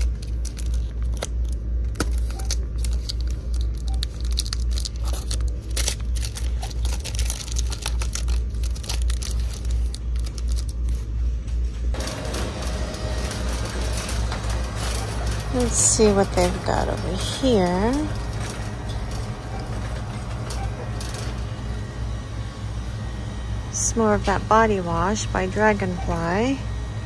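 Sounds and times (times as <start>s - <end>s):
plastic packs rustling: 0.0s - 11.1s, 11.9s - 22.0s.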